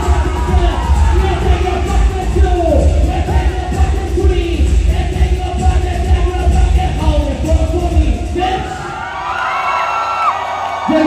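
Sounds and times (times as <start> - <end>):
crowd cheering and whooping: 0.0 - 3.7, 8.5 - 11.0
dance music with heavy beat: 0.0 - 8.9.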